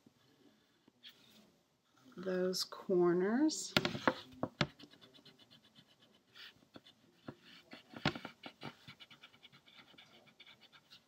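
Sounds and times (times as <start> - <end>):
pencil scratching on paper: 4.0 - 11.0.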